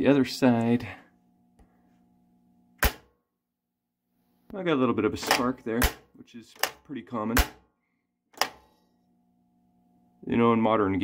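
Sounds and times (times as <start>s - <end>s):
faint steady hum: 0.0s - 3.1s, 4.1s - 11.0s
pinball flipper clack: 2.8s - 3.1s, 5.2s - 6.0s, 6.6s - 7.6s, 8.4s - 8.8s.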